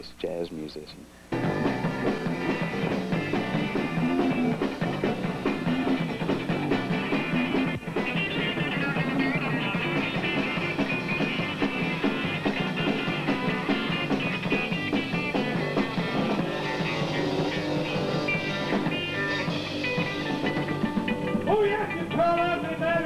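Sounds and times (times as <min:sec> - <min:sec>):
drums and cymbals: 0:01.3 - 0:23.0
live rock band: 0:01.3 - 0:23.0.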